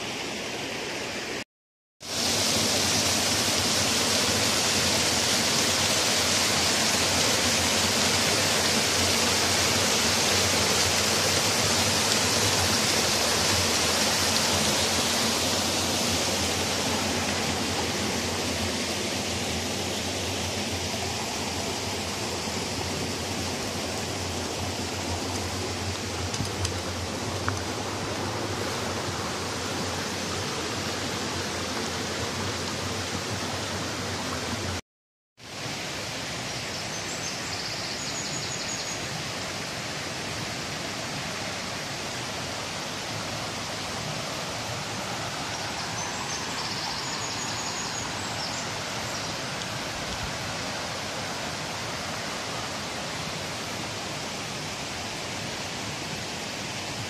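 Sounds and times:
stream rushing over rocks: 0:02.0 - 0:34.8, 0:35.4 - 0:57.0.

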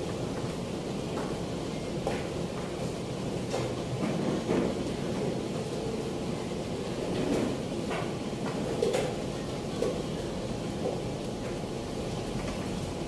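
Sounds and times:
busy indoor hall noise: 0:00.0 - 0:13.0.

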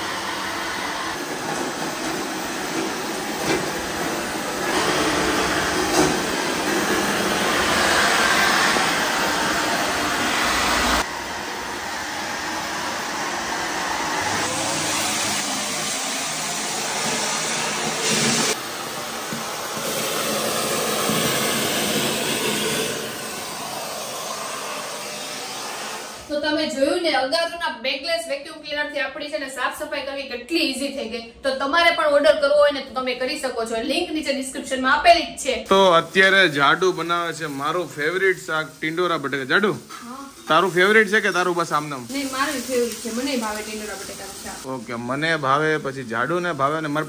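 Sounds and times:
vacuum cleaner running: 0:00.0 - 0:26.6, 0:35.7 - 0:47.0.

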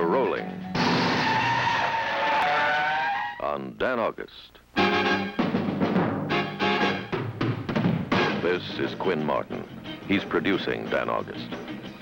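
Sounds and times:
car tyres screeching: 0:00.8 - 0:03.4.

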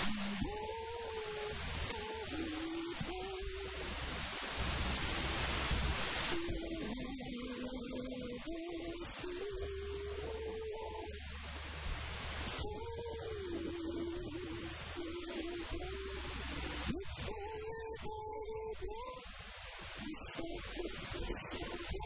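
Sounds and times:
woman singing: 0:00.0 - 0:04.0, 0:06.3 - 0:11.4, 0:12.5 - 0:19.4, 0:20.0 - 0:22.0.

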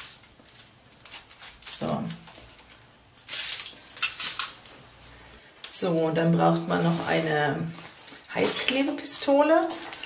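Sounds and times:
aluminium foil crinkling: 0:00.0 - 0:04.8, 0:06.5 - 0:10.0.

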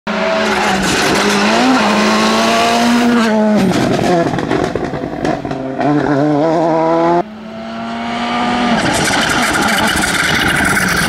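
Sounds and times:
rally car engine at high revs: 0:00.1 - 0:11.0.

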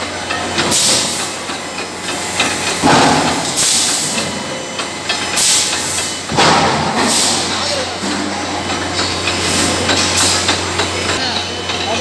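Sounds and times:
forging press hissing bursts: 0:00.7 - 0:01.4, 0:02.3 - 0:04.5, 0:05.3 - 0:07.6.

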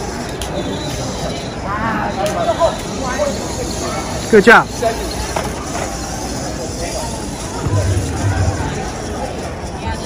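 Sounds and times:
indistinct voices: 0:06.6 - 0:10.0.

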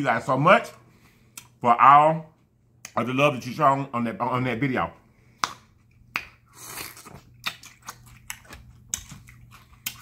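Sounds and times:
crunchy chewing of pepper: 0:05.8 - 0:10.0.

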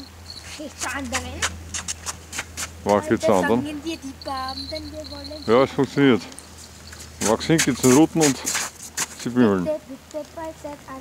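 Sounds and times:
small bell jingling: 0:00.0 - 0:01.4, 0:03.0 - 0:08.2
steady low hum: 0:00.0 - 0:09.8.

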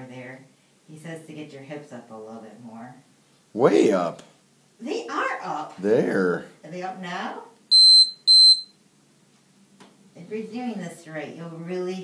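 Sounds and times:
timer beeping: 0:07.7 - 0:08.7.

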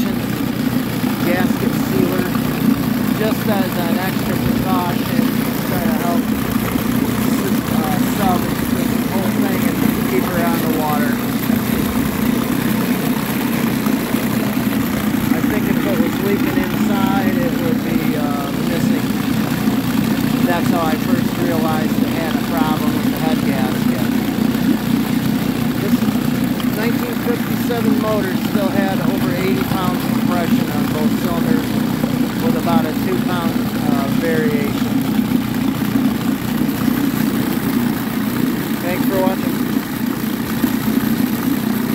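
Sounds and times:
outboard motor running: 0:00.0 - 0:41.9
propeller churning water: 0:00.0 - 0:41.9.

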